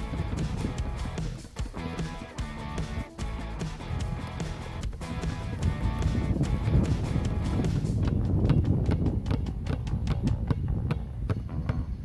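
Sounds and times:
background music: 0:00.0 - 0:08.3
basketballs bouncing on court: 0:07.5 - 0:12.0.

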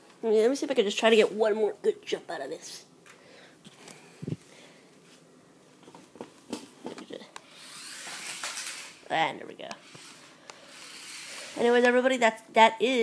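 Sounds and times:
small electric motor whirring: 0:07.4 - 0:09.2, 0:09.8 - 0:11.9
toy car wheels clattering: 0:07.5 - 0:09.2, 0:09.8 - 0:11.9.

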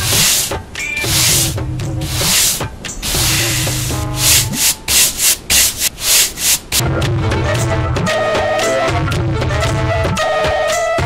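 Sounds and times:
broom sweeping ground: 0:00.0 - 0:06.8.

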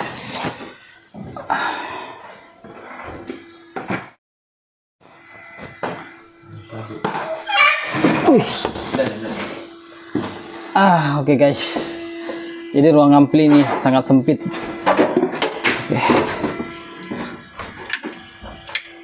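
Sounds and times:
indistinct voices: 0:06.4 - 0:18.9.

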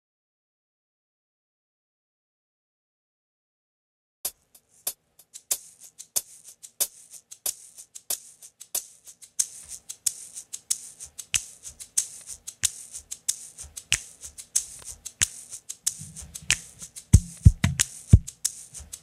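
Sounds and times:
shaker played in rhythm: 0:04.3 - 0:19.0
low thumping beat: 0:11.2 - 0:19.0.

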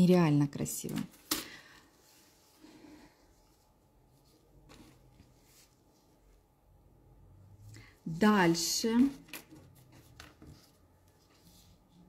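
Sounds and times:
faint handling sounds: 0:00.8 - 0:06.8, 0:07.4 - 0:12.0.

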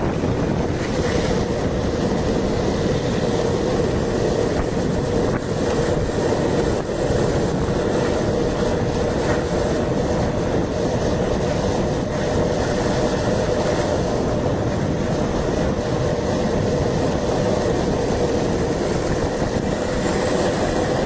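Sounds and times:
skateboard wheels rolling on asphalt: 0:00.0 - 0:21.0
wind noise on microphone: 0:00.0 - 0:21.0.

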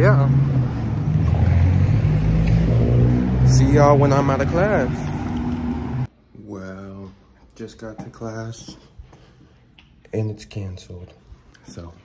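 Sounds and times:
road traffic rumble: 0:00.0 - 0:06.1.

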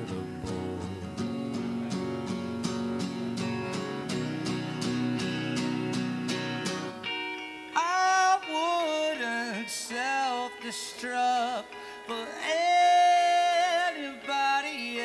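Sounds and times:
man singing: 0:00.0 - 0:02.6, 0:07.8 - 0:15.0
acoustic guitar strumming: 0:00.0 - 0:15.0
electric guitar: 0:00.0 - 0:15.0.

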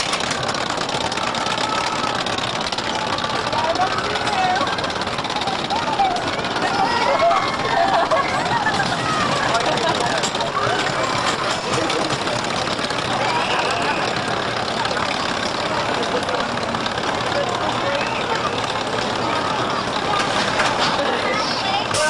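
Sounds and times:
crowd chatter: 0:00.0 - 0:22.0
roller coaster rumbling on track: 0:00.0 - 0:22.0
children's voices: 0:03.0 - 0:22.0.

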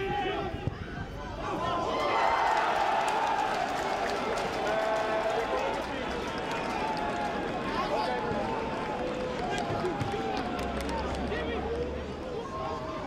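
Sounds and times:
crowd noise outdoors: 0:00.0 - 0:13.0.

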